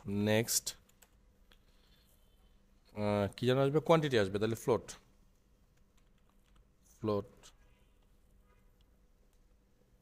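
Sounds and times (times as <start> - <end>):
soft keyboard typing: 0.7 - 1.8, 5.7 - 9.6.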